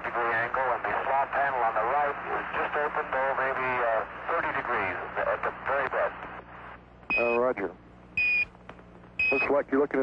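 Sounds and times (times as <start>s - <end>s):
crackly radio voices: 0.0s - 7.8s.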